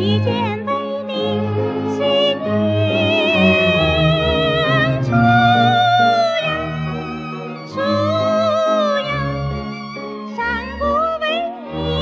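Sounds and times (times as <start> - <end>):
woman singing: 0.0 - 6.8, 7.6 - 9.4, 10.3 - 12.0
small orchestra accompaniment: 0.0 - 12.0.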